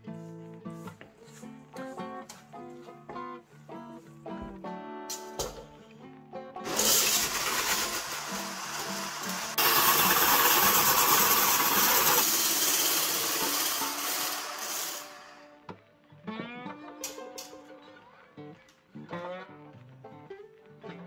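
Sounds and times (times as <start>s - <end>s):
hand blender whisking: 6.6s - 15.5s.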